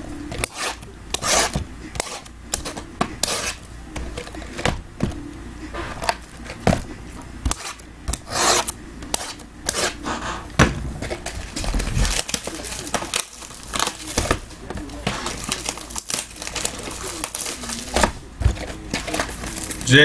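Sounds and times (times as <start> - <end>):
knocks of cardboard boxes: 10.5 - 13.2.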